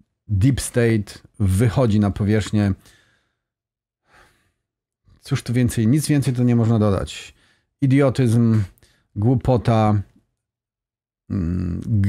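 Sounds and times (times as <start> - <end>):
man breathing: 2.8 - 4.8, 7.3 - 7.8.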